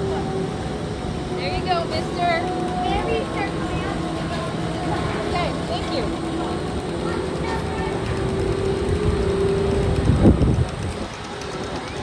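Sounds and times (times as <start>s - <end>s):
gondola machinery rumbling: 0.0s - 12.0s
held mechanical tone: 0.0s - 12.0s.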